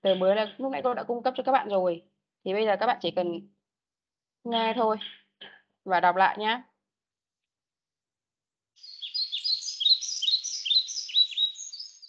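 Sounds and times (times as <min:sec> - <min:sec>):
birdsong chirps and whistles: 0:04.6 - 0:05.6, 0:08.8 - 0:12.0.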